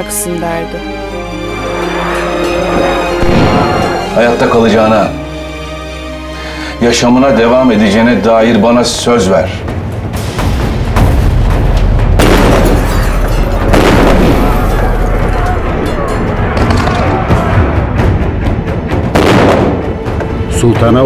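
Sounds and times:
music: 0:00.0 - 0:21.0
explosions: 0:03.2 - 0:04.0, 0:10.4 - 0:15.5, 0:19.1 - 0:19.9
gunfire: 0:12.2 - 0:14.9, 0:19.2 - 0:19.9.

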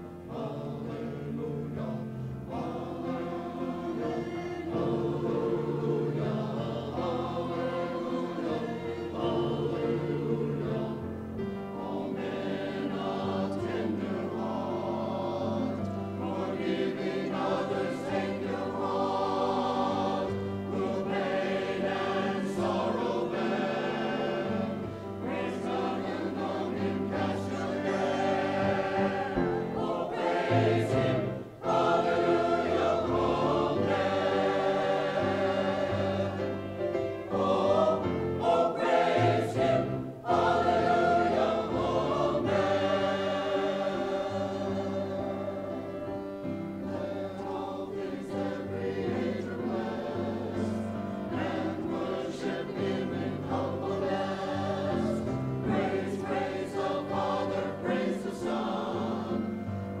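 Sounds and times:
mixed choir singing in parts: 0:00.0 - 1:00.0.

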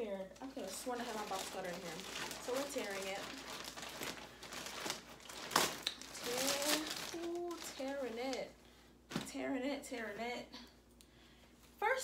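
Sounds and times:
plastic bag crinkling and tearing: 0:00.4 - 0:08.5.

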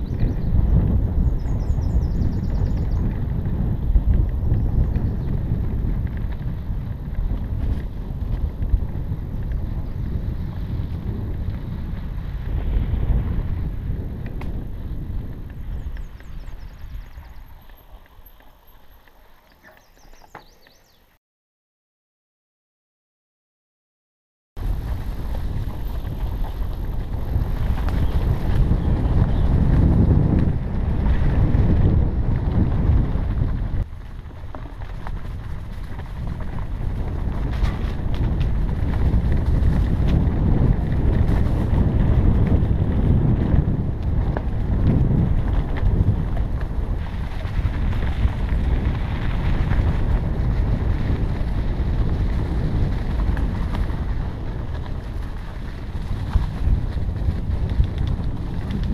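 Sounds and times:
wind rumble: 0:00.0 - 0:21.0, 0:24.6 - 0:58.9
mountain bike rolling on trail: 0:00.0 - 0:21.2, 0:24.6 - 0:58.9.

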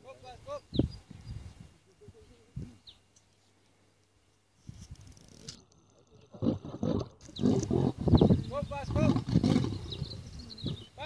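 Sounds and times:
lion roaring: 0:06.3 - 0:08.1.

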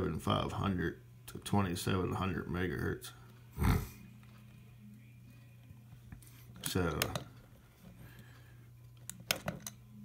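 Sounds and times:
man's voice: 0:00.0 - 0:04.0, 0:06.6 - 0:07.4
faint steady low hum: 0:00.0 - 0:10.0.

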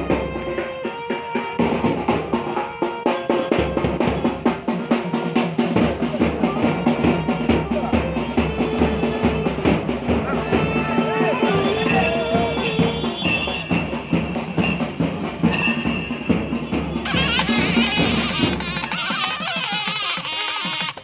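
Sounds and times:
rapid drumming: 0:00.0 - 0:21.0
reed instrument melody: 0:00.0 - 0:21.0.

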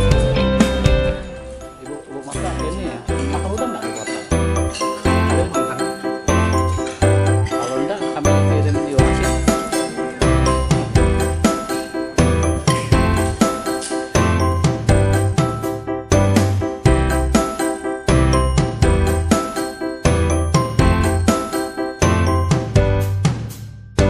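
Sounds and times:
bright ringing melody: 0:01.2 - 0:22.7
repeating bass line: 0:08.5 - 0:09.6, 0:10.2 - 0:11.6.

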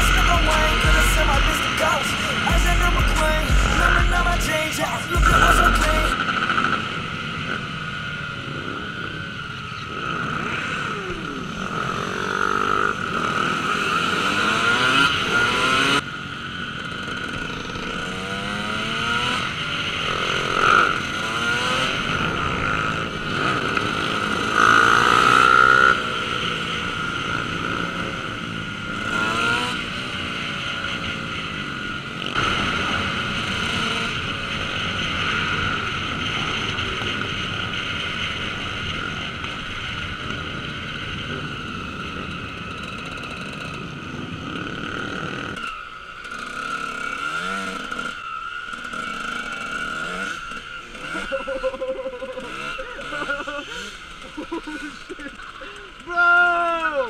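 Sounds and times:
dirt bike engine revving: 0:00.0 - 0:57.0
wind and road noise: 0:00.0 - 0:57.0.

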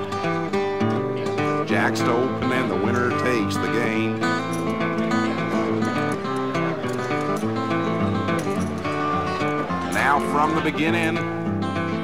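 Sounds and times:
strummed acoustic guitar: 0:00.0 - 0:12.0.

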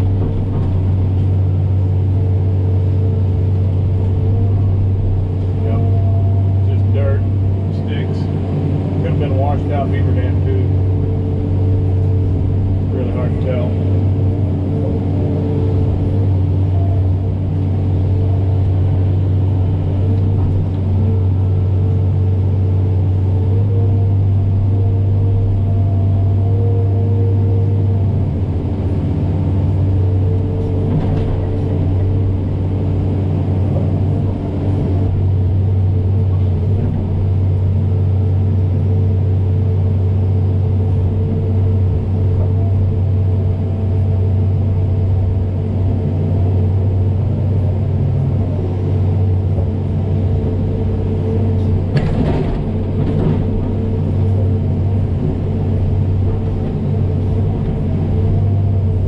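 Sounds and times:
excavator diesel engine running: 0:00.0 - 0:59.0.

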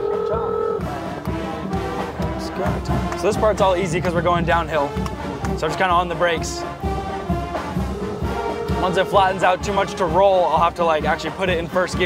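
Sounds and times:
brass instruments playing: 0:00.0 - 0:12.0.

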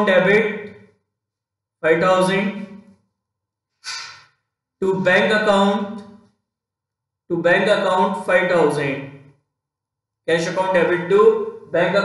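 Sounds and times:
man speaking: 0:00.0 - 0:00.7, 0:01.8 - 0:02.8, 0:04.8 - 0:06.1, 0:07.3 - 0:09.2, 0:10.3 - 0:12.0
man inhaling through mouth: 0:03.8 - 0:04.4.

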